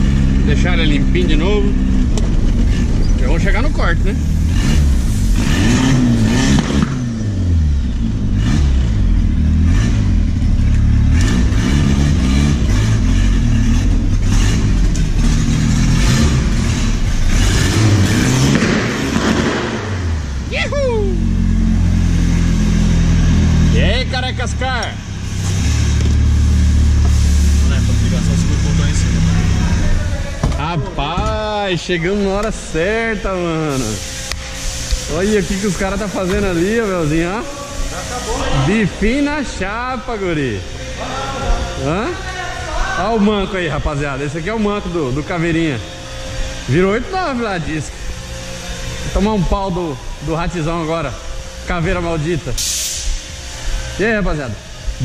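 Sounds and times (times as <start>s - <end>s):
car engine revving: 0.0s - 30.6s, 31.8s - 55.0s.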